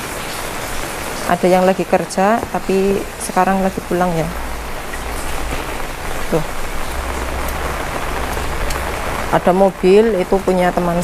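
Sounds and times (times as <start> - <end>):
heavy rain on wet paving: 0.0 - 11.0.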